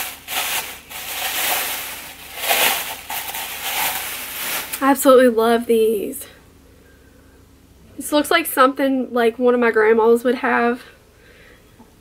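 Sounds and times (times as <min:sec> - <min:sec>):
packaging rustling: 0:00.0 - 0:04.9.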